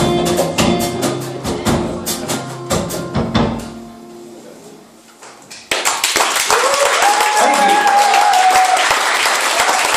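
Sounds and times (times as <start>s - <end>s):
live band playing: 0.0s - 5.1s
audience applause and cheering: 5.7s - 9.9s
person cheering: 6.5s - 9.0s.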